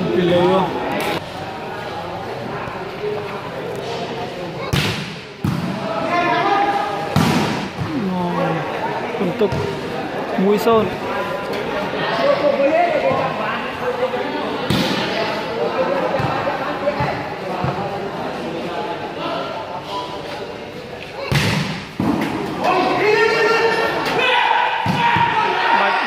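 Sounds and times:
volleyball slaps: 4.7s - 5.8s, 7.1s - 7.9s, 21.3s - 22.4s.

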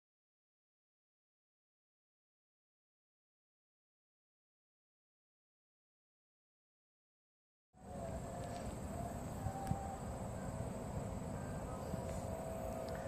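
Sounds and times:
faint steady hum: 7.8s - 13.0s
wind rumbling on microphone: 7.8s - 13.0s.

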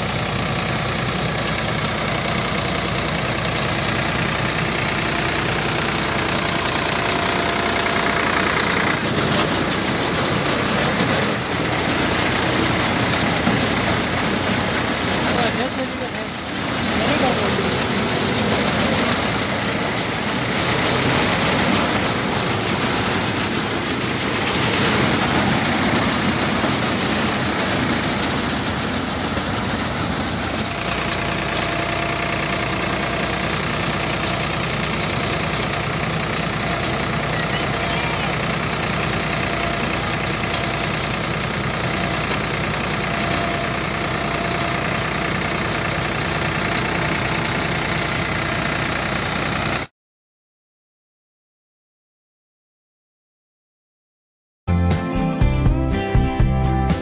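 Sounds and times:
thresher drum running: 0.0s - 49.9s
tractor diesel engine: 0.0s - 49.9s.

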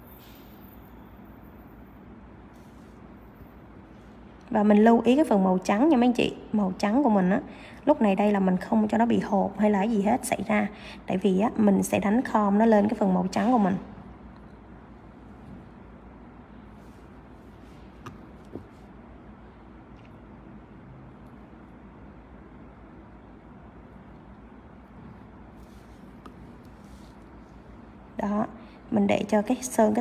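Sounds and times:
low hum and hiss: 0.0s - 30.0s.

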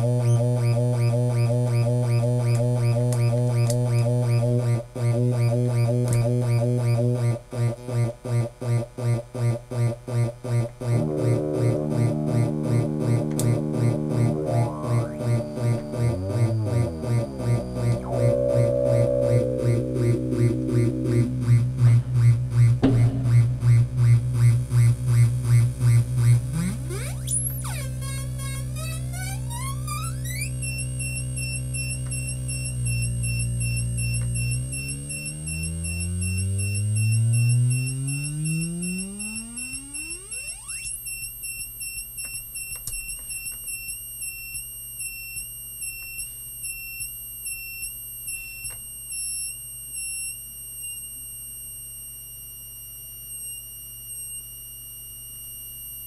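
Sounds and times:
synth low buzzing drone: 0.0s - 9.2s, 9.8s - 40.8s
pulsing high synth tones: 10.8s - 41.0s
synth high wavering whistles: 14.3s - 22.3s, 35.1s - 41.0s.

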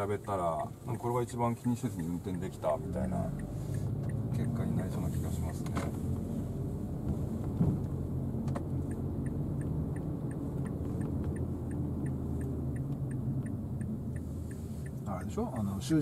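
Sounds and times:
engine and road rumble: 0.0s - 16.0s
light regular ticking: 0.0s - 16.0s.

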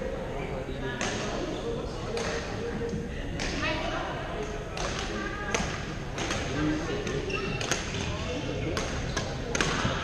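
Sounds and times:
murmur of voices: 0.0s - 10.0s
shoe squeaks: 7.2s - 7.7s.

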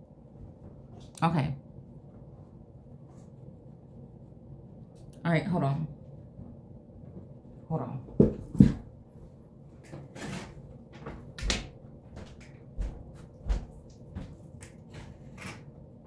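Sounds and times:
thumps of person moving about: 8.1s - 9.0s, 10.0s - 15.2s.

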